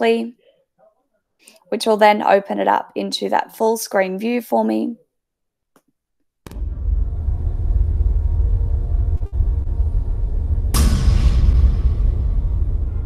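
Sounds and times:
deep steady rumble: 6.5 - 13.0
loud hit with hissing tail: 6.5 - 13.0.

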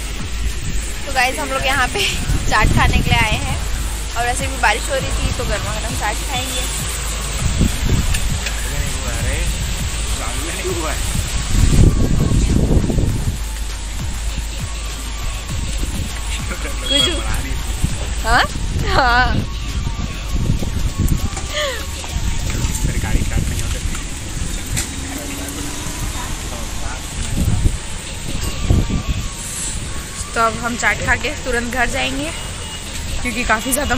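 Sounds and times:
heavy rain falling: 0.0 - 33.9
indistinct voices: 0.0 - 33.9
outdoor noise: 0.0 - 33.9
wind on microphone: 0.0 - 33.9.

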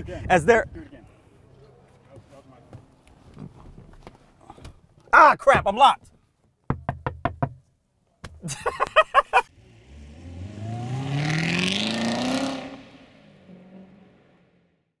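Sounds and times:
car engine accelerating: 9.5 - 14.8.

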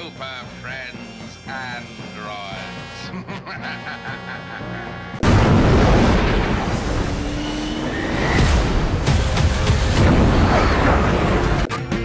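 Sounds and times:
music: 0.0 - 5.2, 8.3 - 12.0
fighter jet engine rushing: 5.2 - 11.6.

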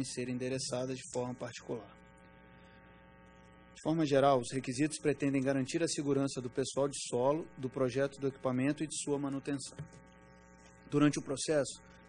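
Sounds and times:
man talking: 0.0 - 1.9, 3.8 - 9.9, 10.9 - 11.8
faint electrical mains hum: 0.0 - 12.0.

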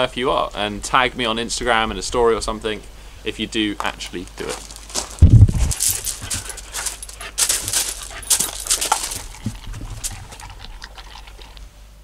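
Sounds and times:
kibble crunching in steel bowl: 4.4 - 11.7
dogs panting: 5.7 - 11.6.

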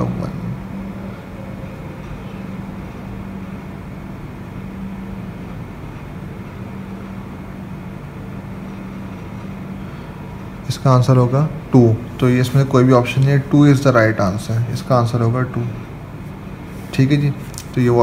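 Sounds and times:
background hum and hiss: 0.0 - 18.0
low drone: 0.0 - 18.0.

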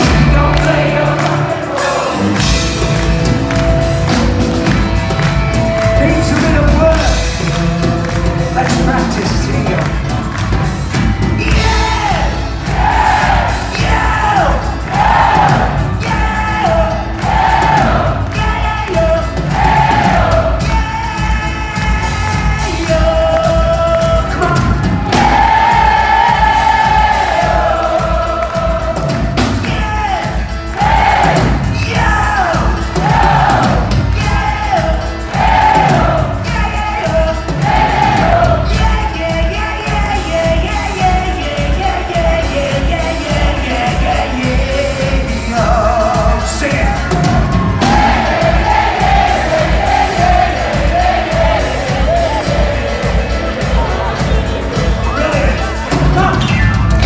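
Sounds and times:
lead vocal: 0.0 - 57.0
live rock band: 0.0 - 57.0.

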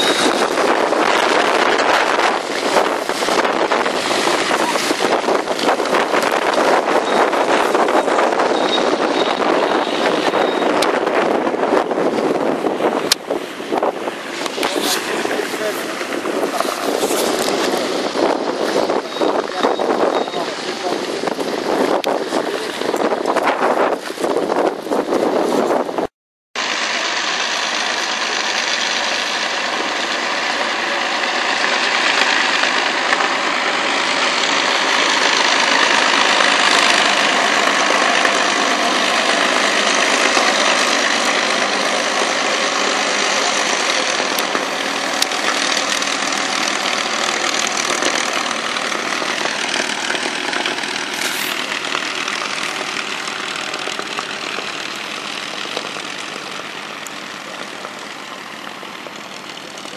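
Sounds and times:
propeller aircraft engines: 0.0 - 59.9.

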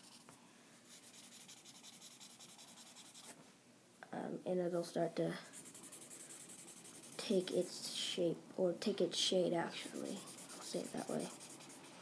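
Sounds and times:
blending stump rubbing on paper: 5.5 - 7.5, 9.8 - 11.9.

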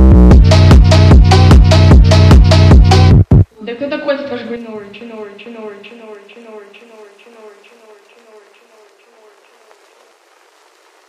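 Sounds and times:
faint hiss: 3.5 - 11.0.

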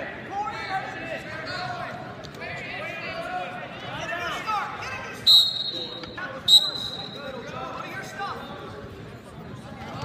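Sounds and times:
crowd chatter: 0.0 - 10.0
referee's whistle blasts: 5.2 - 7.4.

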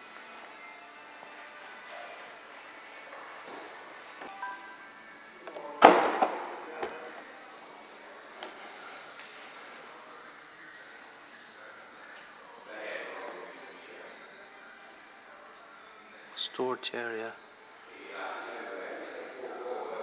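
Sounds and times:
faint background music: 0.0 - 20.0.

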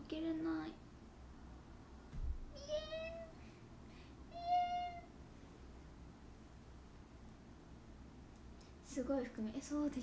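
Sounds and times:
low thump: 2.1 - 2.5
woman whining: 4.3 - 5.1.

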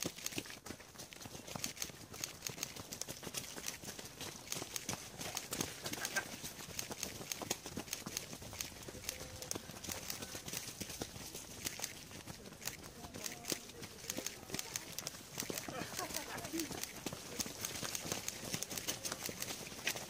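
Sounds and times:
runners' footsteps on dirt trail: 0.0 - 20.0.

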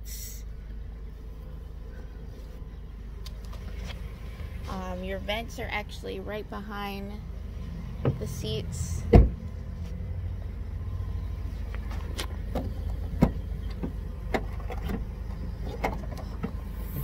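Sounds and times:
low-pitched background noise: 0.0 - 17.0
car door shutting with thump: 9.1 - 9.4.

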